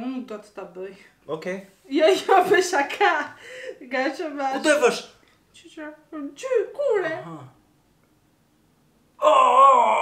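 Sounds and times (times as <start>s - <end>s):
man wailing: 9.2s - 10.0s.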